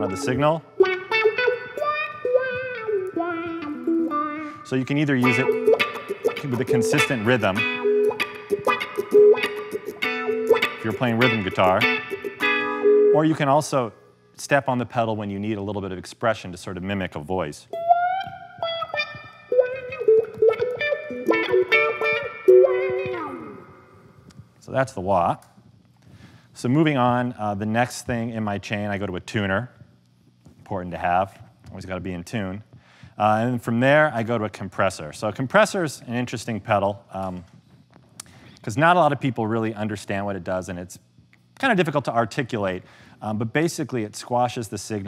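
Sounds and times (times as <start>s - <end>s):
electric guitar with wah pedal: 0.0s - 13.2s, 17.7s - 24.5s.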